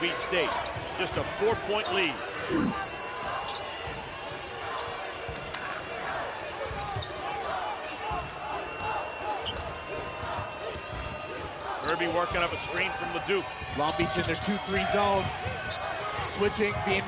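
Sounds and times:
crowd cheering: 0.0s - 17.0s.

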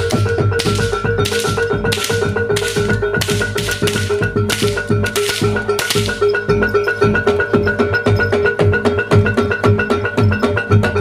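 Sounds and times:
drums: 0.0s - 11.0s.

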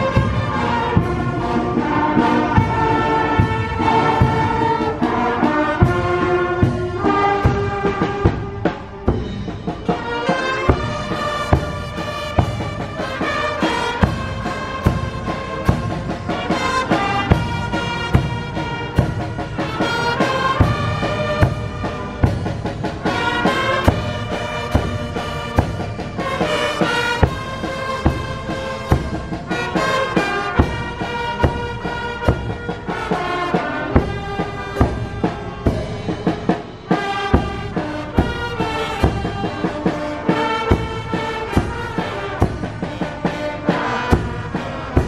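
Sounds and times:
horns playing slow melody: 0.0s - 45.0s
steady drum beat: 0.0s - 45.0s.

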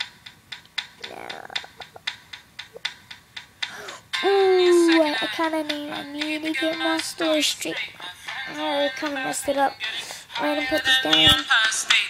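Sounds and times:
faint voice: 1.0s - 1.9s.

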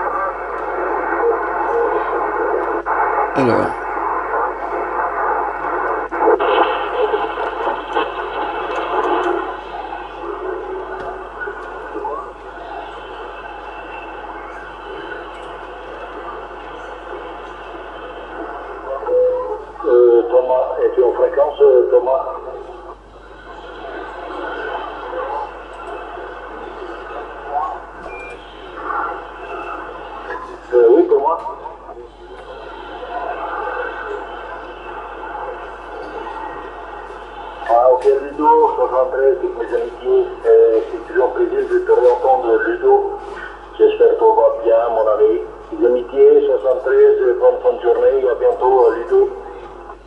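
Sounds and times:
faint radio voices: 0.0s - 50.0s
radio static hiss: 0.0s - 50.0s.

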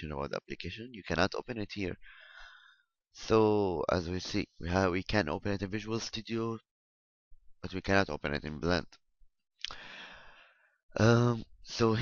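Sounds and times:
person sighing breath: 9.7s - 10.6s.

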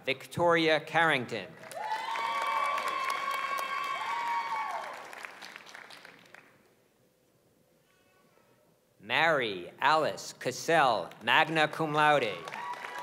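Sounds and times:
audience clapping and cheering: 1.6s - 6.6s, 12.2s - 13.0s.

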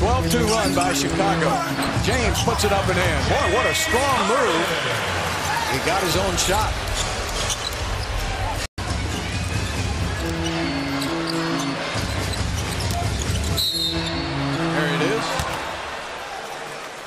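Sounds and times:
arena crowd noise: 0.0s - 17.0s.

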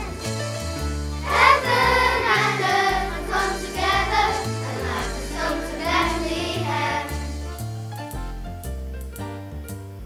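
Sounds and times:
children's choir singing: 0.0s - 0.3s, 1.2s - 7.5s
instrumental backing track: 0.0s - 10.0s.

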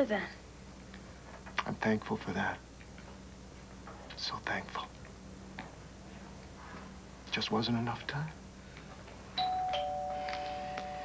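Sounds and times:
two-note doorbell chime: 9.4s - 11.0s.

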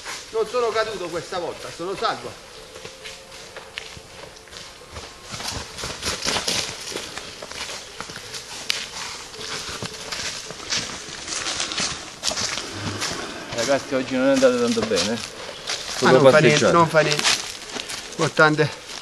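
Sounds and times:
footsteps crunching on dry leaves: 0.0s - 19.0s.

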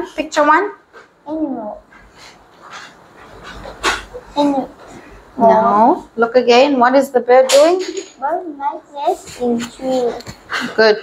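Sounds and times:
person breathing: 10.4s - 10.8s.

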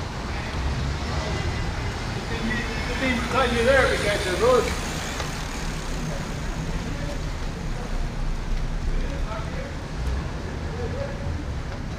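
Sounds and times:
idling and passing cars: 0.0s - 11.9s.

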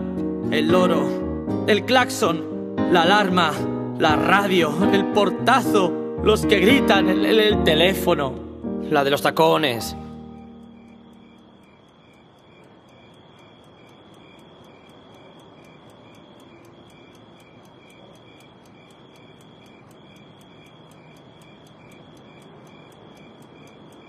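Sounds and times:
crickets chirping: 0.0s - 24.0s.

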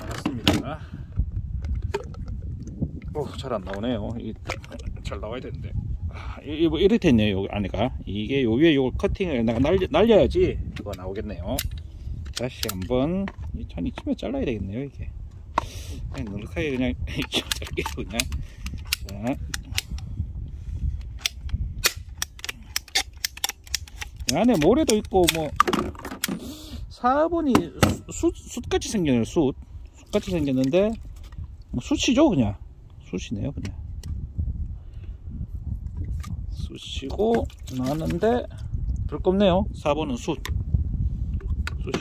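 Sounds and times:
wind rumble on microphone: 0.0s - 42.0s
pipe cutter clicking through plastic: 21.1s - 26.4s.

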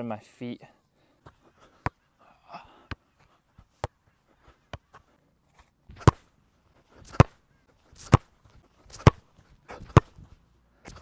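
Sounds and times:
boot striking football: 5.9s - 6.3s, 7.0s - 7.4s, 8.0s - 8.3s, 8.9s - 10.2s.

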